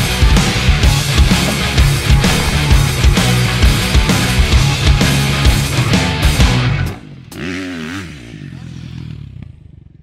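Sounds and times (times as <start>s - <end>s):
heavy rock music: 0.0s - 7.1s
dirt bike engine revving: 0.8s - 9.9s.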